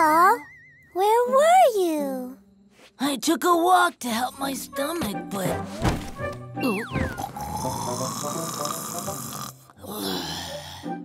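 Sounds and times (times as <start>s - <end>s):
cartoon cat snoring: 7.2s - 10.6s.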